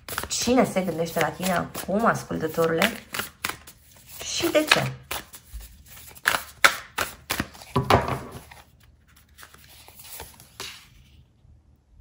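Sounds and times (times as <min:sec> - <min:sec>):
cards shuffling: 0:00.0 - 0:11.2
card laid on table: 0:07.6 - 0:08.7.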